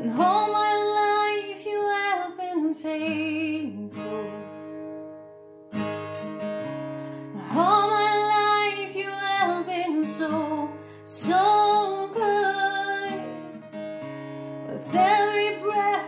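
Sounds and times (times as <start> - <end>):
woman singing: 0.0 - 4.7, 7.2 - 13.6, 14.6 - 16.0
acoustic guitar strumming: 3.2 - 16.0.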